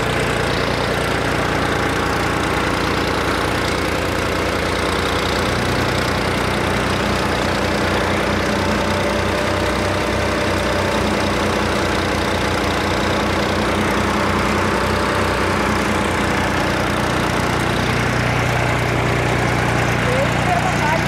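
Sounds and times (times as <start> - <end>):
diesel engine chugging: 0.0 - 21.0.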